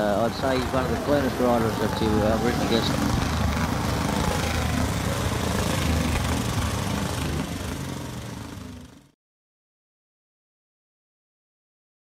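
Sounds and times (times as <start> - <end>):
motorcycle engine running: 0.0 - 9.2.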